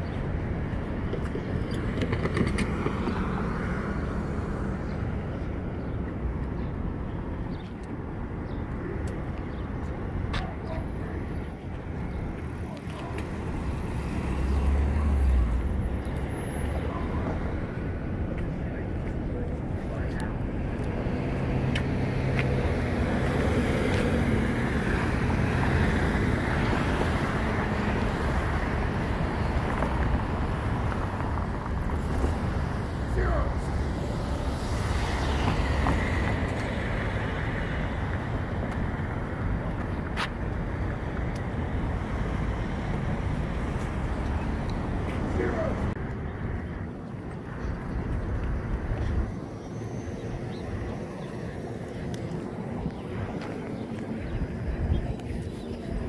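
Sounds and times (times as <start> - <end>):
cars passing: 0.0 - 56.0
low rumble of road noise: 0.0 - 56.0.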